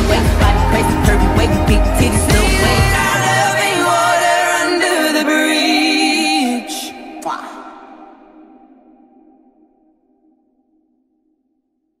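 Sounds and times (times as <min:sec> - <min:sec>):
held pop music chord: 0:00.0 - 0:06.9.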